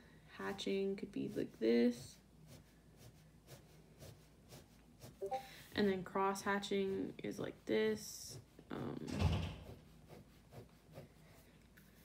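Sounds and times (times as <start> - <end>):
ballpoint pen scratching paper: 1.2 - 5.2, 9.5 - 12.0
thump and rub on sketchbook: 9.3 - 11.1.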